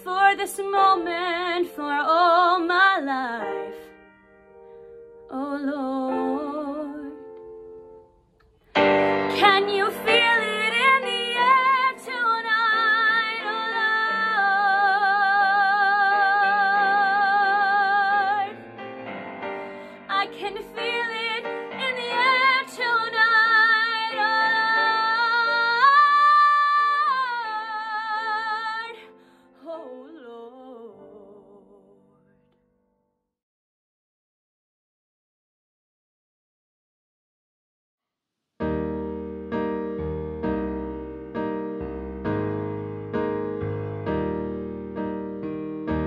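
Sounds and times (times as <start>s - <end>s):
piano accompaniment: 0.0s - 32.5s, 38.6s - 46.0s
woman singing with vibrato: 5.3s - 7.3s, 9.2s - 18.6s, 20.0s - 32.0s.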